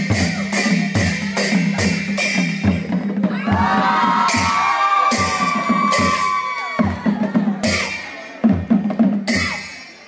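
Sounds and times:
high-pitched voices whooping: 0:03.3 - 0:08.1.

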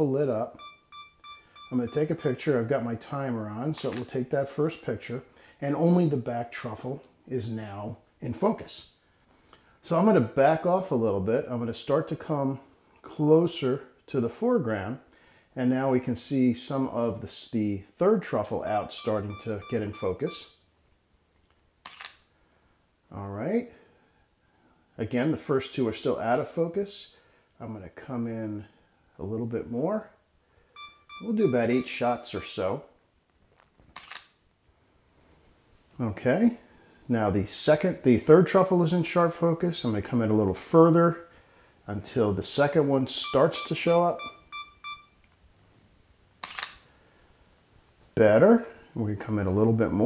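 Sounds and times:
camera shutter clicks: 0:03.8 - 0:04.1, 0:21.8 - 0:22.3, 0:33.9 - 0:34.4, 0:46.4 - 0:46.8.

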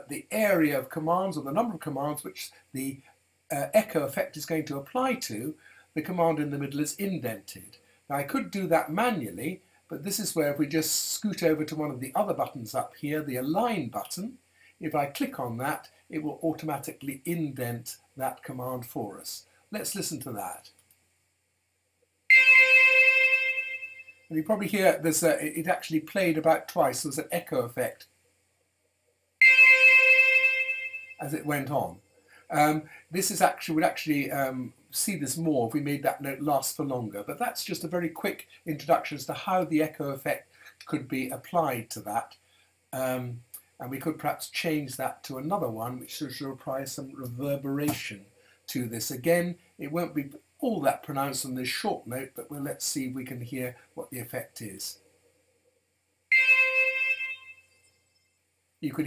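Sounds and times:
synth note with echo: 0:22.3 - 0:24.4, 0:29.4 - 0:31.3, 0:56.3 - 0:57.7.

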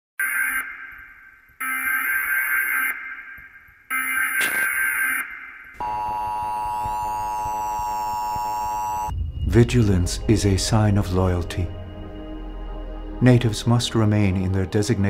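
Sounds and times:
steady electronic buzzing tone: 0:05.7 - 0:09.4
sharp electronic tones with hiss: 0:05.8 - 0:09.3.

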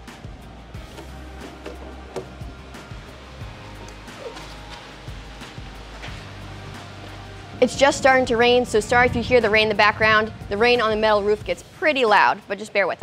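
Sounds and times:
music with low bass line: 0:00.0 - 0:11.7.

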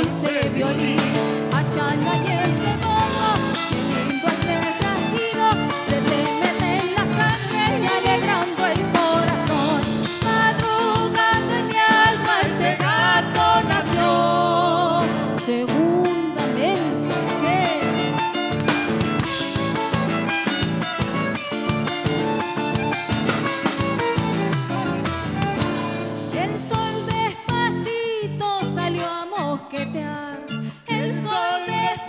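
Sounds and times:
woman singing: 0:00.0 - 0:18.7, 0:26.3 - 0:32.0
drums: 0:00.0 - 0:28.1
guitar: 0:00.0 - 0:32.0
violin with sliding notes: 0:00.0 - 0:32.0.

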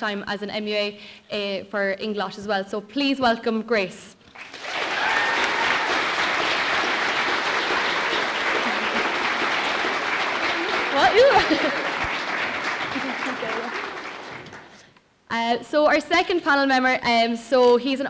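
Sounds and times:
audience applauding: 0:04.3 - 0:14.9.

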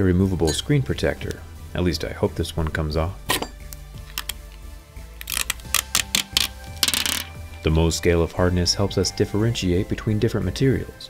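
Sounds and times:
faint background music: 0:00.0 - 0:11.0
protective film peeling crackles: 0:04.0 - 0:07.3.

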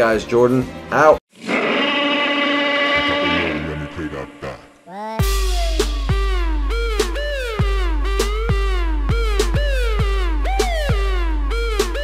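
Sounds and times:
monster roar: 0:01.4 - 0:04.8.

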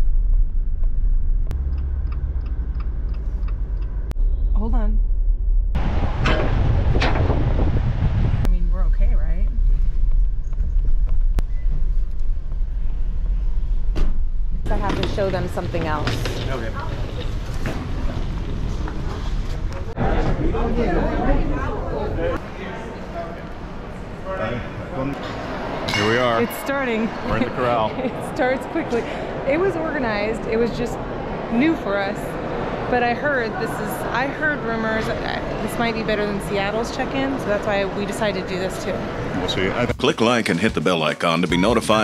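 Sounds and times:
car engine and road rumble: 0:00.0 - 0:20.0.

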